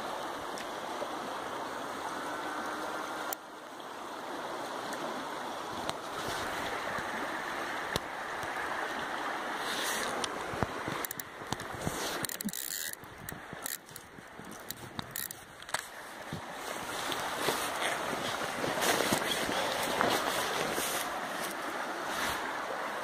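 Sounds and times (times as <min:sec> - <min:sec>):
river water rushing: 0:00.0 - 0:23.0.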